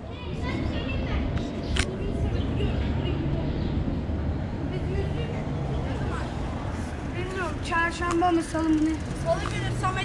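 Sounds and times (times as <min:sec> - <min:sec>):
motor vehicle engine rumbling: 0:00.2 - 0:10.0.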